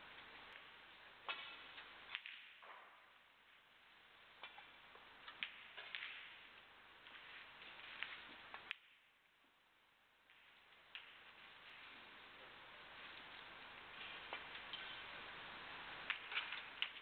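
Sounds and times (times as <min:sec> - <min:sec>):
snooker balls clicking: 0:04.4 - 0:06.5.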